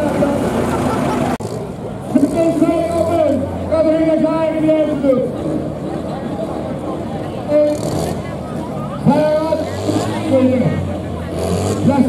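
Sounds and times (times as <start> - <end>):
diesel tractor engine under load: 0.0 - 12.0.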